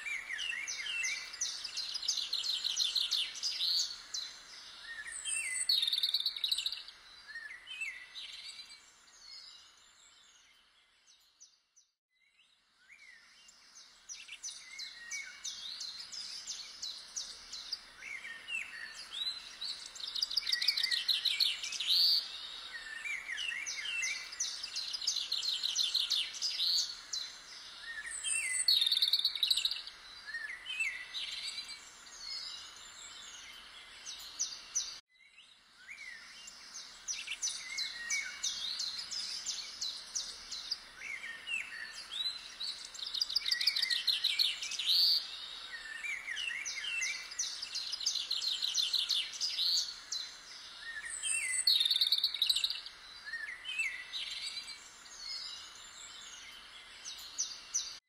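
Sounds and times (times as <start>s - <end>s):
faint outdoor background noise: 0.0s - 58.0s
songbirds singing: 0.0s - 58.0s.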